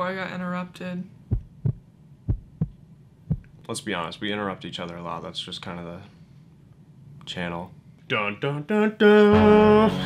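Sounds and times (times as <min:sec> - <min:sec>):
heartbeat thumps: 0:01.2 - 0:03.6.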